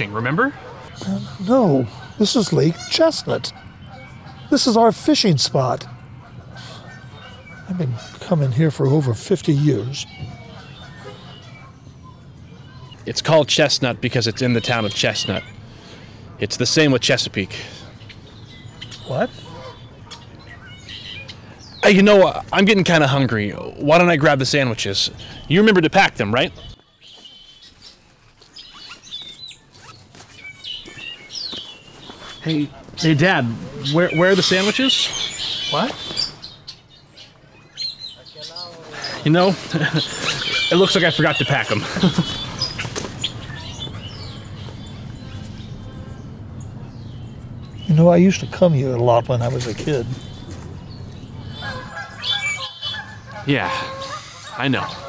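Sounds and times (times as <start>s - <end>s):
waterfowl honking: 0.0s - 11.8s, 18.8s - 21.5s, 32.4s - 36.7s, 38.9s - 44.4s, 51.4s - 55.0s
small birds chirping: 0.0s - 55.0s.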